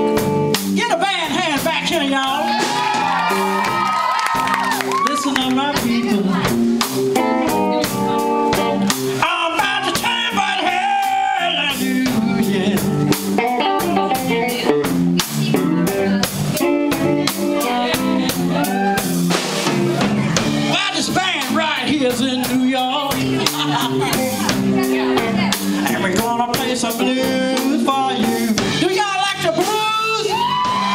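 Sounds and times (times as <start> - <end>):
electric guitar with bent notes: 0.0 - 29.5
drum kit steady beat: 0.0 - 30.9.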